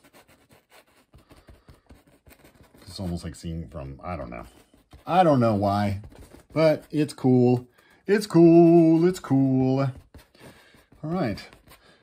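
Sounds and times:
paintbrush scratching on canvas: 0.0 - 12.0.

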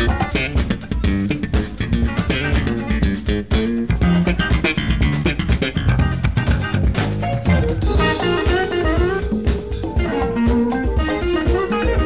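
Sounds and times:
bass guitar line: 0.0 - 12.0
electric guitar: 0.0 - 12.0
jazz-funk band playing live: 0.0 - 12.0.

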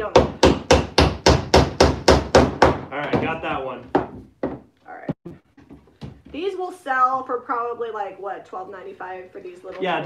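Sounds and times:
hammer striking wooden board: 0.1 - 4.7.

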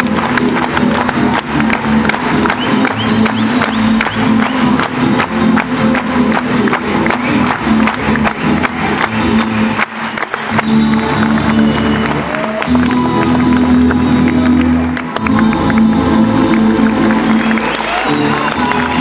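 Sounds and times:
bass line: 0.0 - 19.0
live plucked string ensemble: 0.0 - 19.0.

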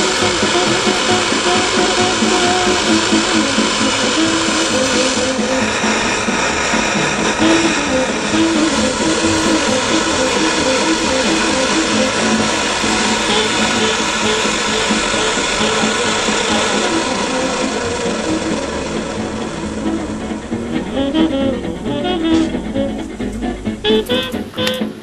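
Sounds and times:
background music: 0.0 - 25.0
stove burner hissing: 0.0 - 25.0.

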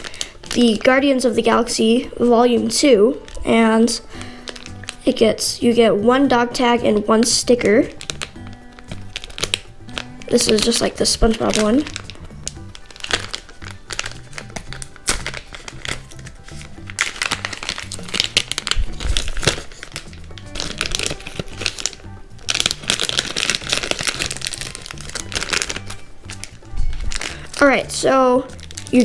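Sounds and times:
plastic packet crinkling: 0.0 - 5.5, 7.0 - 29.0
background music: 0.0 - 29.0.

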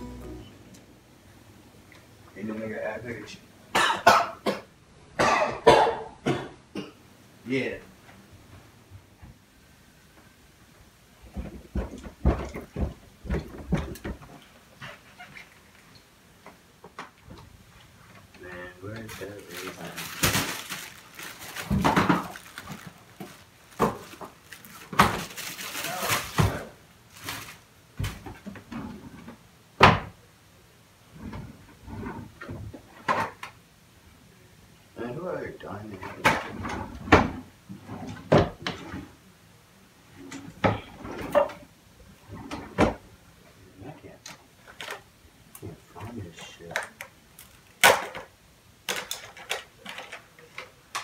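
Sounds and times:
footsteps thumping down stairs: 11.2 - 14.4.

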